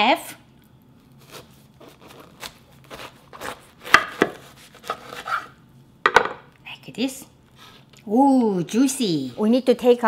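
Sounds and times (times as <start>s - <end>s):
knife cutting pomegranate: 1.1s - 5.6s.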